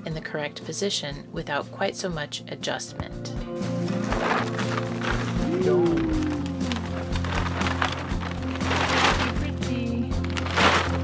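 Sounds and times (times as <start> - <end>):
background music with held tones: 0.0 - 11.0
paper and plastic wrapping rustling: 4.0 - 11.0.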